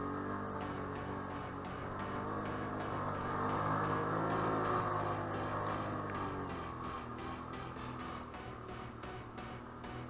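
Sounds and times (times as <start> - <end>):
background music: 0.0 - 10.0
quad bike engine: 0.0 - 10.0.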